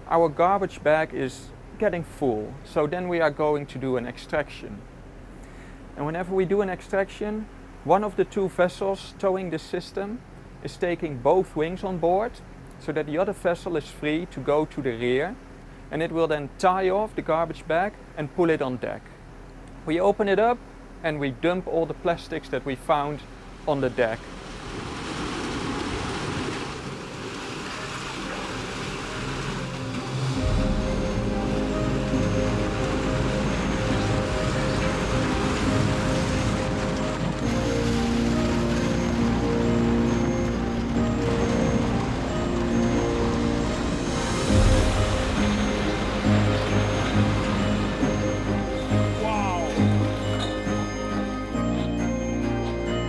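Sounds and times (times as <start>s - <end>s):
background music: 27.2s - 53.0s.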